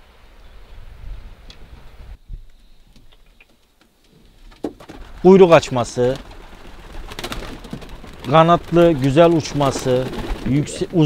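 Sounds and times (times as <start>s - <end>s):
pigeons cooing: 5.0s - 11.0s.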